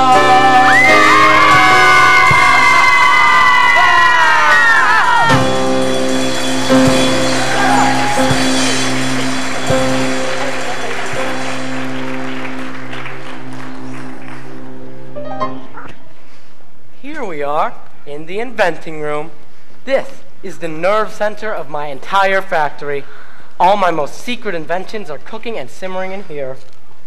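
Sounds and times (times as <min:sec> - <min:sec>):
musical accompaniment: 0:00.0 - 0:03.8, 0:05.0 - 0:16.3
audience applause and cheering: 0:00.0 - 0:15.6.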